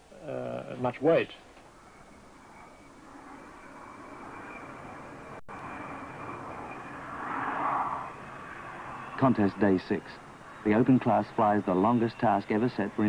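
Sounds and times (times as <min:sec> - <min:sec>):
air rushing past glider: 0:01.9 - 0:10.8.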